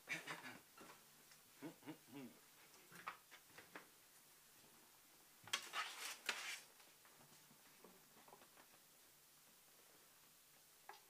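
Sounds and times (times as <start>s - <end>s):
short vocal sound: 1.6s - 2.4s.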